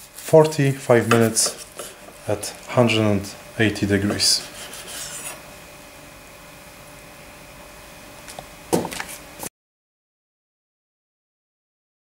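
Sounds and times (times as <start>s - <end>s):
knife rasping through meat: 4.4s - 5.4s.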